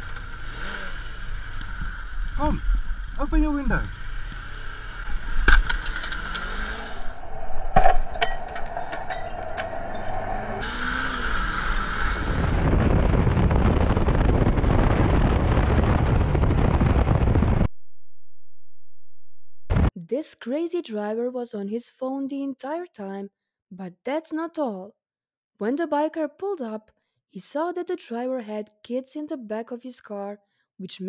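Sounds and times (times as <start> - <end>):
motorcycle engine running: 0.0 - 7.0
wind rushing on helmet camera: 1.2 - 17.7.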